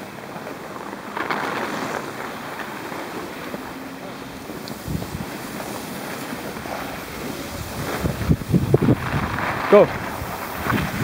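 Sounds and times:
low bumps: 0.0 - 11.0
skis hissing on snow: 0.0 - 11.0
wind rushing over microphone: 1.9 - 11.0.

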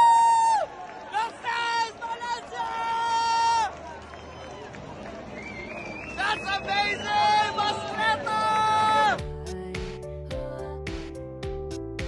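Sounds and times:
person shouting a cheer: 0.0 - 3.7
celebrating crowd hubbub: 0.7 - 9.2.

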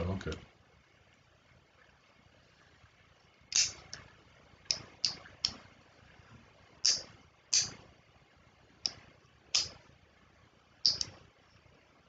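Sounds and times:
sharp clicks: 6.8 - 7.8, 8.8 - 9.8, 10.8 - 11.2.

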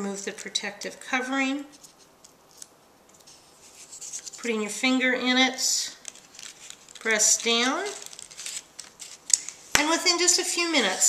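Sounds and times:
paper rustling: 1.7 - 4.6, 5.9 - 11.0.

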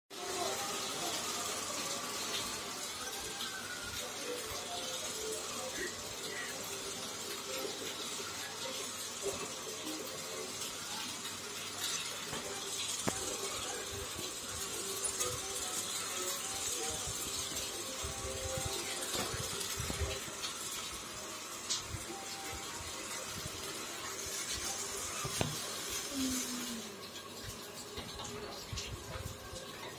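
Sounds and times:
faint voices: 0.1 - 29.9.

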